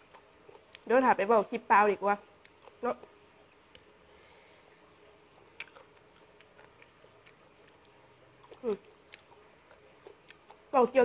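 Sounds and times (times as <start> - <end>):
quiet chewing: 0.0 - 1.0, 2.3 - 11.0
woman talking: 0.8 - 2.2, 2.8 - 3.1, 8.6 - 8.9, 10.7 - 11.0.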